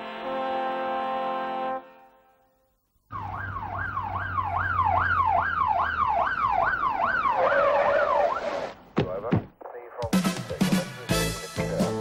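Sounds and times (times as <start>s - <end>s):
police siren wailing: 3.1s - 8.7s.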